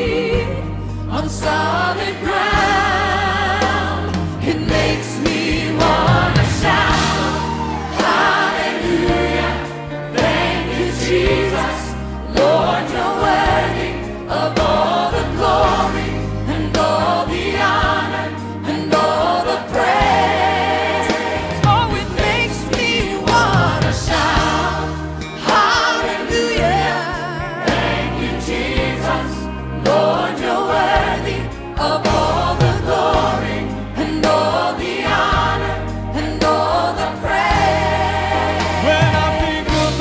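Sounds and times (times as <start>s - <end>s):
band playing: 0.0s - 40.0s
choir singing with vibrato: 0.0s - 40.0s
bass line: 2.4s - 25.6s, 30.8s - 40.0s.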